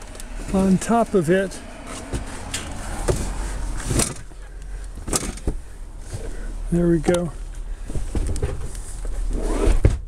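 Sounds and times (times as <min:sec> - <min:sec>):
low thumps: 0:01.8 - 0:06.4
cushions rustling and knocking: 0:03.0 - 0:04.3.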